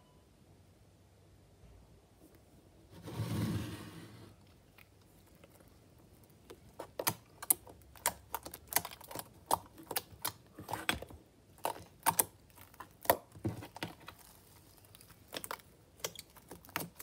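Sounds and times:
slime clicking and popping: 6.4s - 17.0s.

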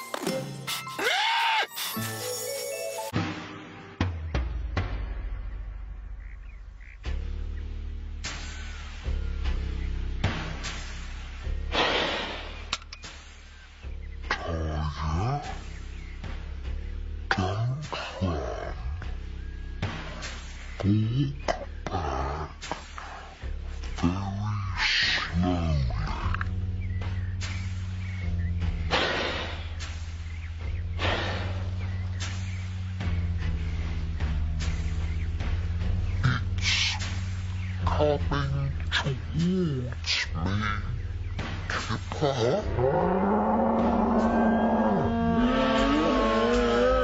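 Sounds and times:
background music: 0.0s - 47.0s
deep slowed cartoon bull lowing: 42.1s - 47.0s.

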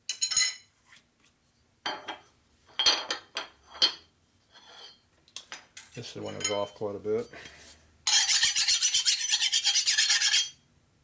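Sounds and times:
metal scrape: 4.5s - 5.0s, 8.1s - 10.6s.

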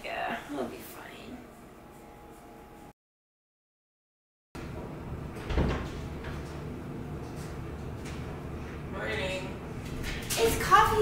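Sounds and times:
door opening with a thump: 5.3s - 6.6s.

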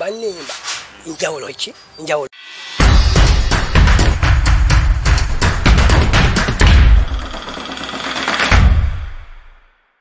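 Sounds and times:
deep bass hit: 2.8s - 7.2s
driving beat: 2.8s - 9.2s.

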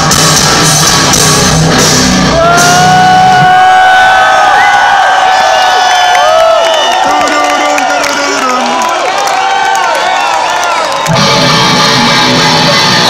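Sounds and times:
heavy metal band playing live: 0.0s - 3.7s, 11.1s - 13.0s
crowd shouting: 2.2s - 13.0s.

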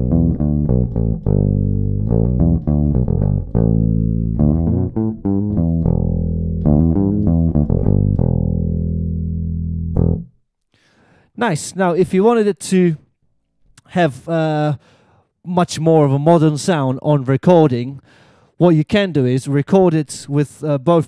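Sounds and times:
electric bass picked notes: 0.0s - 10.4s.

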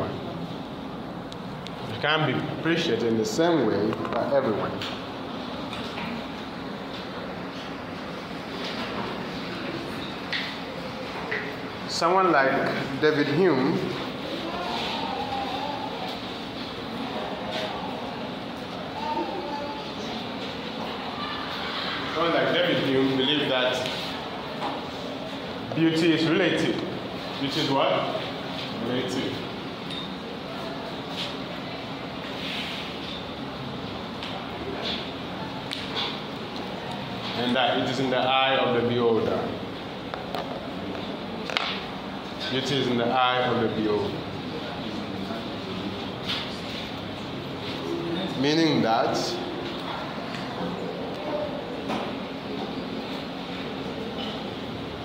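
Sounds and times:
steady background hiss: 0.0s - 55.0s
steady background noise: 0.0s - 55.0s
faint voice: 14.3s - 16.3s, 17.0s - 21.6s.

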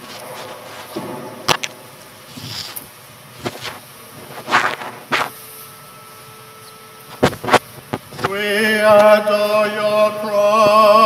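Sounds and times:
sharp knocks and clatter: 0.9s - 1.8s.

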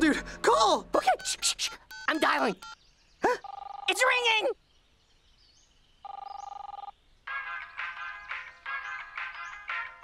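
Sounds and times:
phone ringing tone: 1.2s - 2.8s, 3.4s - 4.0s, 6.0s - 6.9s.

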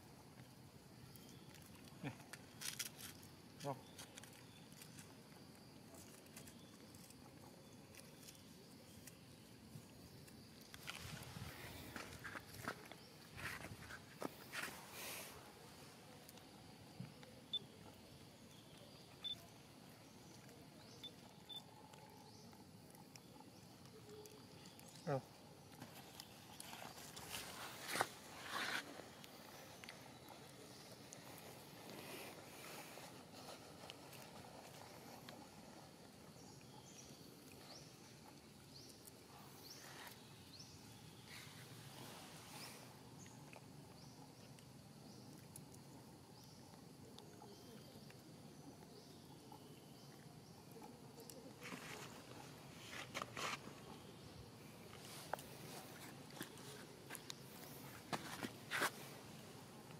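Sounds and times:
quiet outdoor background: 0.0s - 59.9s
rustling and scuffing: 10.8s - 15.2s, 25.8s - 29.1s, 51.6s - 53.8s, 54.9s - 59.2s.

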